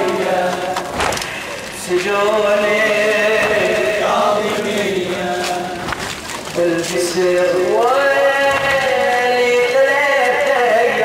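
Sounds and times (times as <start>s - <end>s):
men chanting a lament: 0.0s - 6.0s, 6.6s - 11.0s.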